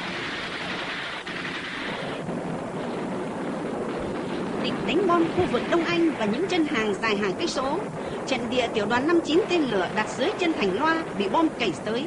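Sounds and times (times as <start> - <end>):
rushing thunder-like roar: 0.0 - 12.0.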